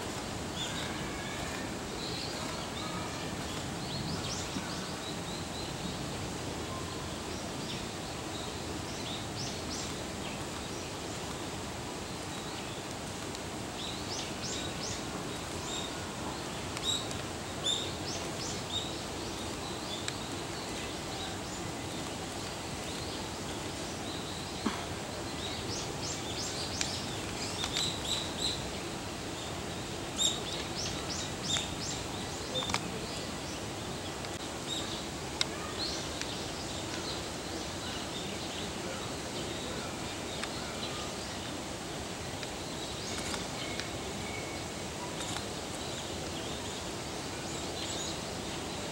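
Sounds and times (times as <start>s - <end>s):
outdoor background noise: 0.0s - 48.9s
small birds chirping: 0.1s - 48.9s.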